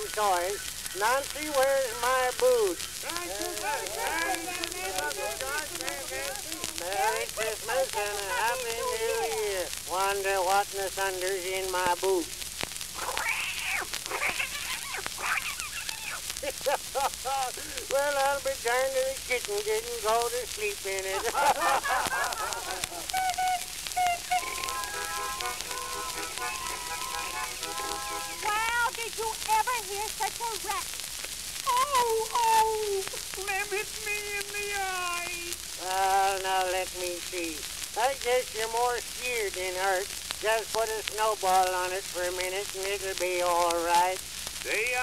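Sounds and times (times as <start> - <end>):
voices talking and calling: 0.0 - 12.3, 12.9 - 31.0, 31.7 - 45.0
record crackle and hiss: 0.0 - 45.0
person laughing: 3.2 - 9.5, 14.1 - 17.9, 21.1 - 24.3
toy horns tooting: 23.6 - 28.8.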